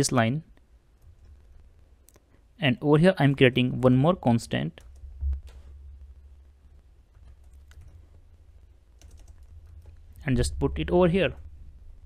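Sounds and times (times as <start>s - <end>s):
low steady hum: 0.0s - 12.0s
faint typing on keyboard: 0.5s - 2.5s, 4.6s - 11.6s.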